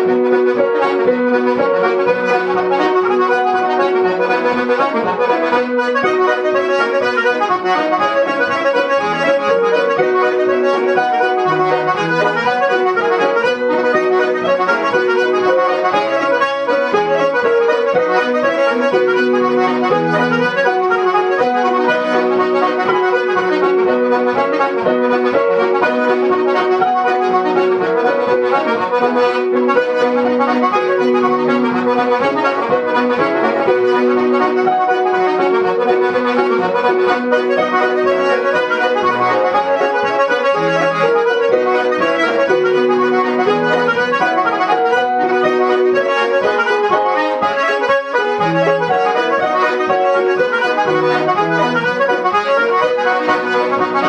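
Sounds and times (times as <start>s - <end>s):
piano chords: 0.0s - 54.0s.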